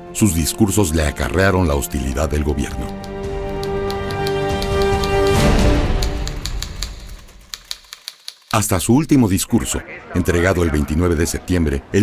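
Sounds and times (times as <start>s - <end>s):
background music: 0.0s - 12.0s
typewriter keys clacking: 2.8s - 8.7s.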